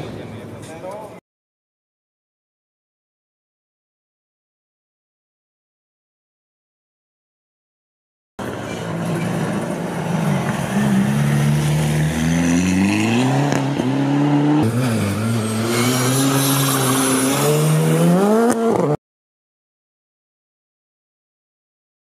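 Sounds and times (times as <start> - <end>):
rally car engine accelerating: 8.5 - 19.0.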